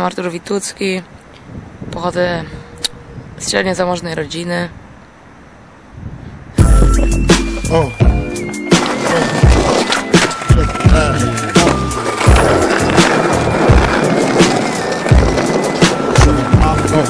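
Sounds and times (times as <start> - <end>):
skateboard wheels rolling on concrete: 6.5 - 17.0
music with steady beat: 6.6 - 14.6.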